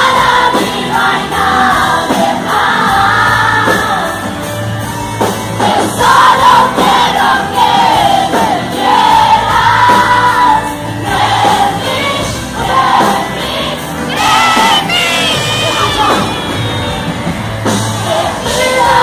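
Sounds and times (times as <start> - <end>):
audience singing along: 0.0 - 19.0
live pop band: 0.0 - 19.0
woman singing: 18.0 - 19.0.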